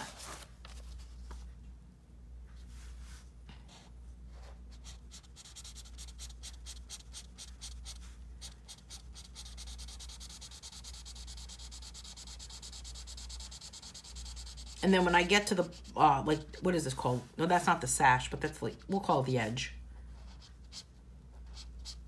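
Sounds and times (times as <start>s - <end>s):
marker scratching on paper: 3.7s - 17.2s, 20.2s - 22.0s.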